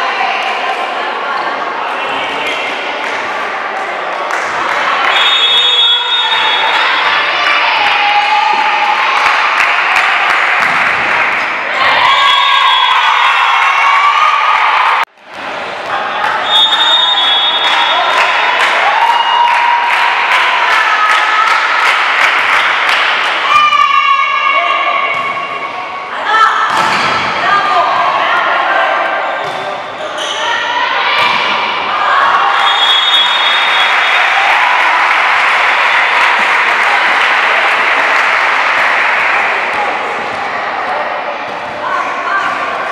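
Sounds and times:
loud voices and shouting: 0.0s - 42.9s
referee's whistle: 5.1s - 6.8s, 16.4s - 18.0s, 32.5s - 34.3s.

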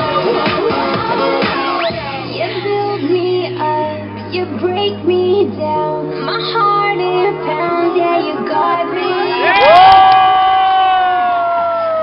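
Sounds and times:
music from sound system: 0.0s - 12.0s
crowd cheering: 8.9s - 12.0s
high held whoop: 9.0s - 12.0s.

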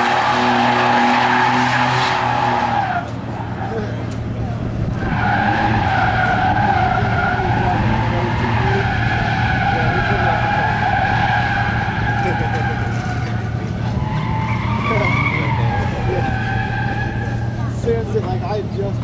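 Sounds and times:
tyres squealing: 0.0s - 4.3s, 5.0s - 17.9s.

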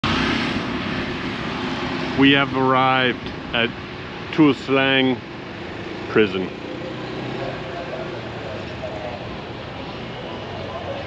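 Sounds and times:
engine drone: 0.0s - 11.0s.

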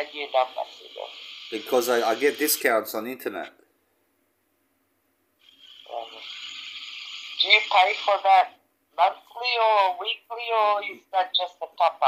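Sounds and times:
phone line hiss: 0.0s - 2.7s, 5.4s - 8.4s.

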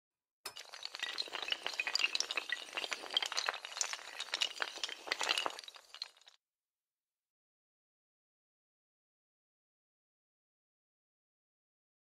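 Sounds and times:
small hard tiles clattering: 0.5s - 6.4s.

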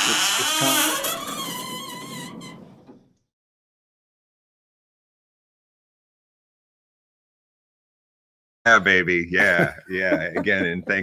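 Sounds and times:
heavy vault door swinging open: 0.0s - 3.2s.

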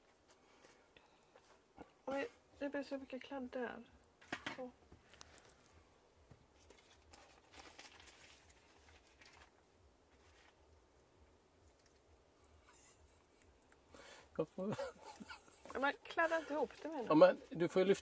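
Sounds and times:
baking paper and dough rustling: 6.4s - 10.8s.

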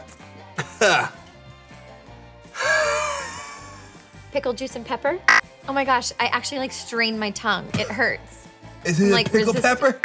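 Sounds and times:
quiet background music with bass: 0.0s - 10.0s.

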